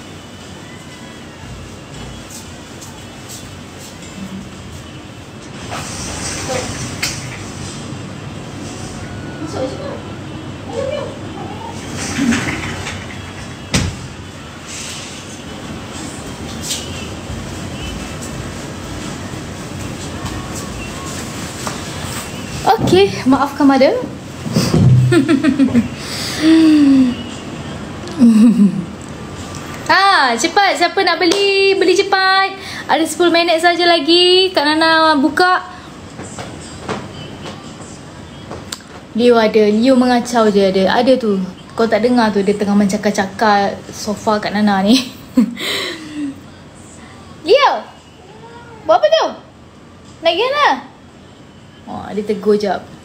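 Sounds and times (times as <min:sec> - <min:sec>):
indoor room noise: 0:00.0 - 0:53.0
woman's voice: 0:09.4 - 0:11.7, 0:22.6 - 0:24.2, 0:29.8 - 0:36.0, 0:39.1 - 0:48.0, 0:48.8 - 0:49.5, 0:50.2 - 0:51.0, 0:51.9 - 0:52.9.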